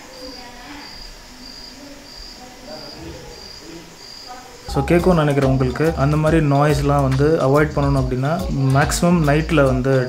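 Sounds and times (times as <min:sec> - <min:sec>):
cricket chirping: 0:00.0 - 0:10.0
faint room noise: 0:00.0 - 0:10.0.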